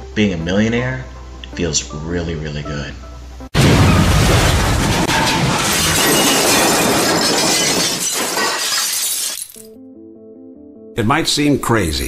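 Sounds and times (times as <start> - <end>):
quiet music with soft held notes: 0.0 - 3.6, 9.7 - 12.0
glass shattering: 3.6 - 9.7.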